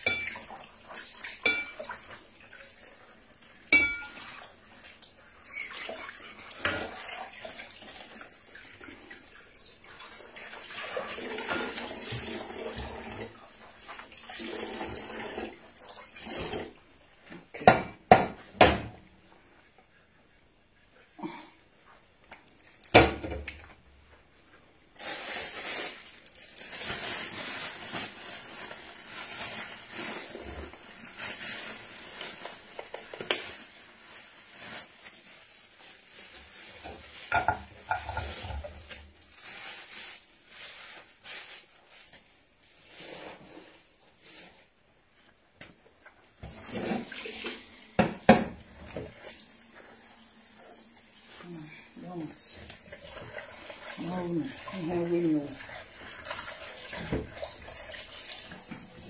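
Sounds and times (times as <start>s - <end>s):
pots and dishes clattering: 0.0s - 2.2s, 3.6s - 4.4s, 6.4s - 7.4s, 17.5s - 18.9s, 36.8s - 38.9s
tap water running into sink: 0.0s - 17.1s, 46.4s - 51.5s, 52.6s - 59.0s.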